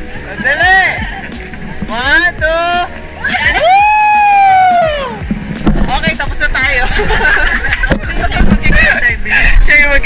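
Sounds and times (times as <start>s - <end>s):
people shouting: 3.2s - 5.2s.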